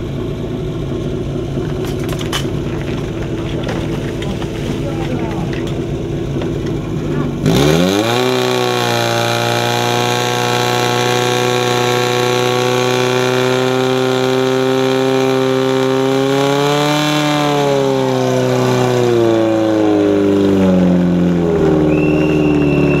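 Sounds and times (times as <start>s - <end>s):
petrol engine revving: 0.0s - 23.0s.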